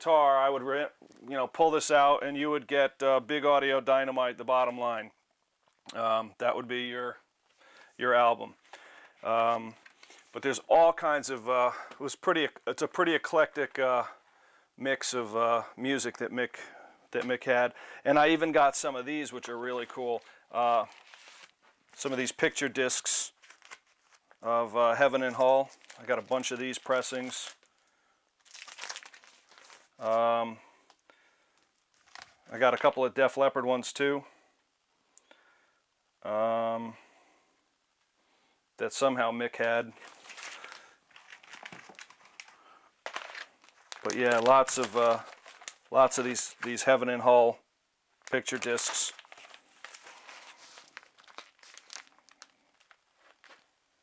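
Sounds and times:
plastic sleeves crinkling: 7.5s - 13.8s, 17.1s - 33.2s, 39.5s - 47.3s, 48.2s - 54.0s.

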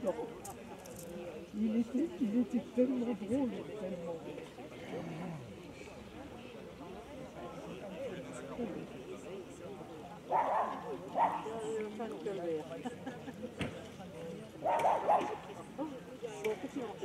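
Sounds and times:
people talking: 0.0s - 17.0s
dog barking: 10.3s - 11.5s, 14.6s - 15.4s.

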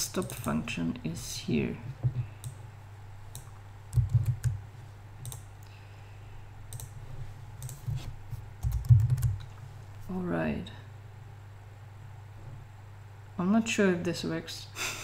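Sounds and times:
keyboard keys and mouse clicks: 0.0s - 0.6s, 3.3s - 4.6s, 5.2s - 5.5s, 6.7s - 7.0s, 7.6s - 9.5s
steady low hum: 0.0s - 15.0s.

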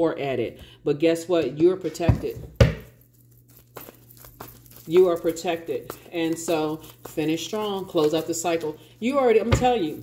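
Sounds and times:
cards being shuffled: 3.0s - 8.7s.

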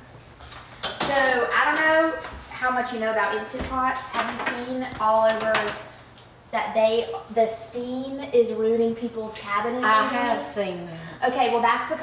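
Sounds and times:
woman talking: 1.0s - 5.9s, 6.5s - 12.0s.

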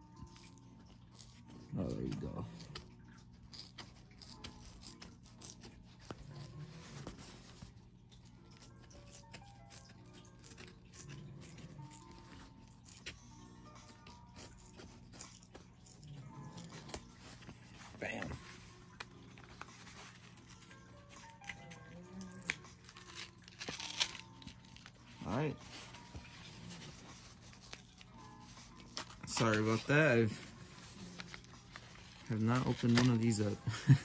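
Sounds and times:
quiet background music: 0.0s - 34.0s
knife cutting plastic packaging: 0.2s - 13.2s, 13.8s - 34.0s.

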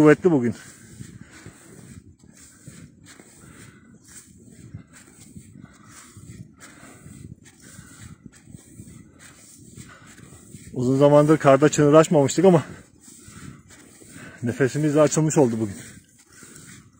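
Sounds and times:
footsteps crunching through snow: 0.0s - 16.9s
person breathing hard: 0.6s - 10.8s, 12.6s - 16.9s.

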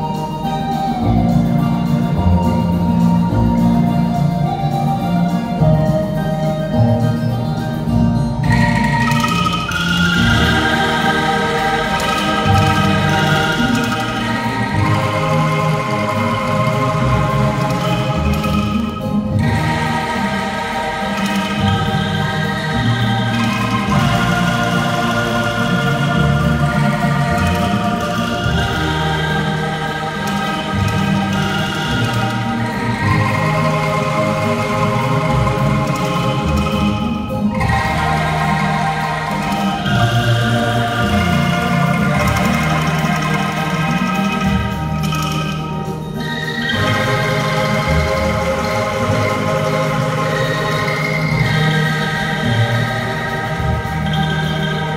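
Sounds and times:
bamboo angklung ensemble playing: 0.0s - 54.9s
low held notes: 0.0s - 54.9s.

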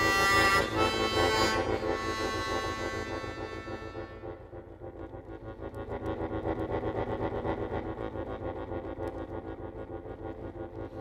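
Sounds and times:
accordion playing repeated chords: 0.0s - 7.8s.

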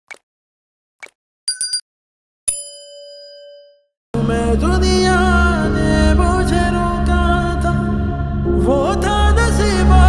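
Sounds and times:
notification bell ding: 1.5s - 1.8s, 2.5s - 3.9s.

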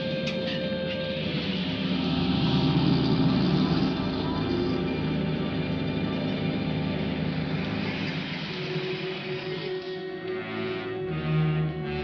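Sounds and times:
film score music: 0.0s - 12.0s
truck engine pulling away: 0.0s - 12.0s.

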